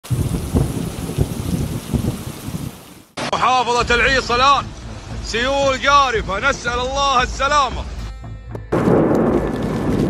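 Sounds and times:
thunder rumbling: 0:00.0 - 0:03.0, 0:08.7 - 0:10.0
heavy rain hissing: 0:00.0 - 0:05.9.

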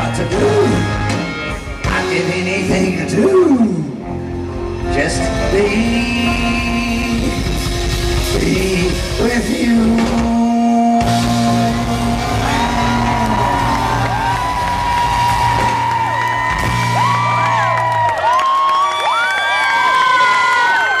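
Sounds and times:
live band playing: 0:00.0 - 0:18.6
crowd cheering and whistling: 0:11.3 - 0:21.0.

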